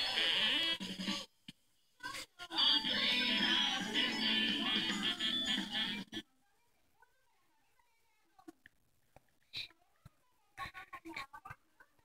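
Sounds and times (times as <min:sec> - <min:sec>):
jingle through small speaker: 0:02.6 - 0:06.0.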